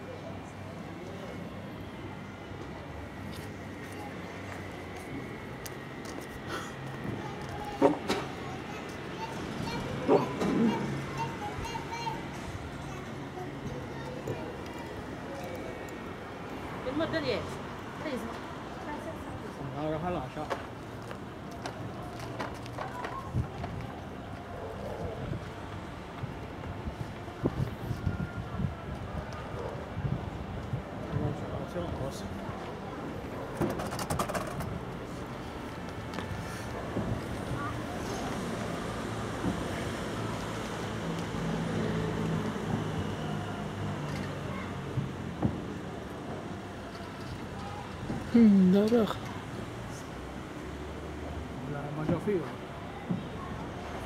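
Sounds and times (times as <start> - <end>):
people talking quietly: 0.0 - 54.0
wind on microphone: 26.3 - 31.4.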